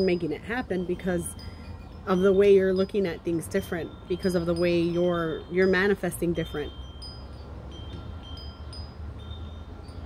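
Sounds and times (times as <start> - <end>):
chimes ringing lightly: 0.0 - 10.0.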